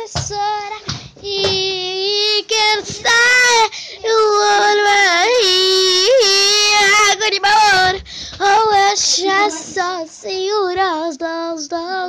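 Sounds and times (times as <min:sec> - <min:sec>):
boy singing: 0:00.0 - 0:12.0.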